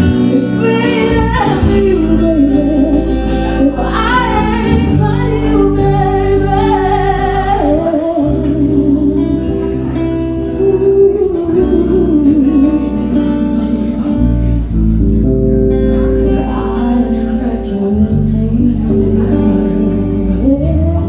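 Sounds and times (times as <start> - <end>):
woman singing into a microphone: 0.0 - 14.6, 16.2 - 21.0
bass guitar: 0.0 - 21.0
electric guitar chords: 0.0 - 21.0.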